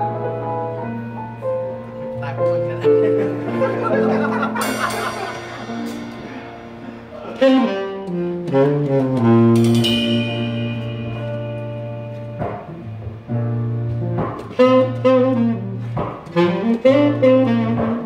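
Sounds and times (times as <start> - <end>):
bass notes: 0.0 - 18.0
piano: 0.0 - 18.0
drums: 1.2 - 18.0
saxophone melody: 2.9 - 18.0
cymbal crash: 4.4 - 7.6, 9.6 - 11.9.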